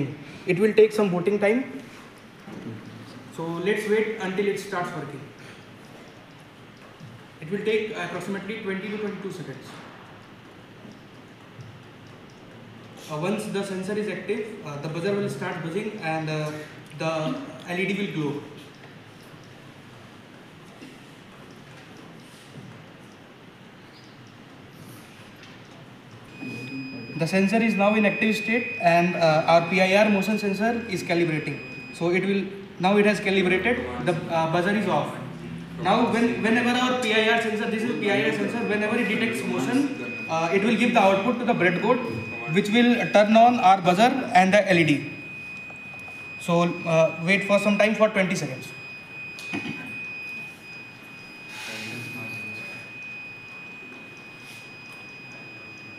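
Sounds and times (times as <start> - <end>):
high-pitched alarm buzzer tone: 26.3 - 55.9.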